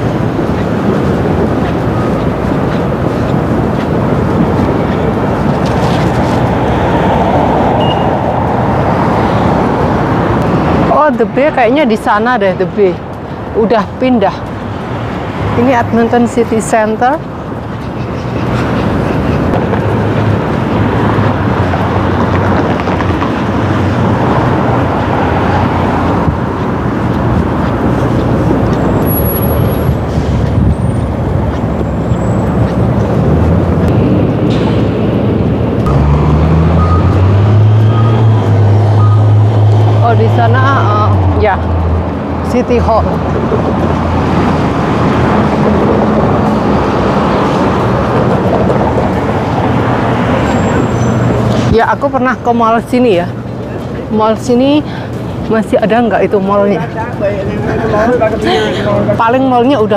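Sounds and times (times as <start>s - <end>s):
passing cars traffic: 0.0s - 59.9s
heavy vehicle engine running: 29.9s - 42.4s.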